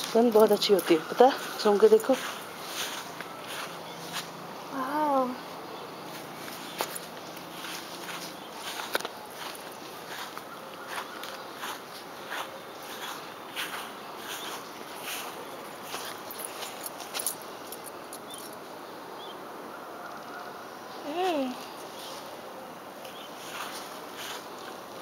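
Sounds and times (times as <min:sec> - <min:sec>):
footsteps on garden path: 0:00.0 - 0:18.6, 0:21.1 - 0:25.0
steady background hiss: 0:00.0 - 0:25.0.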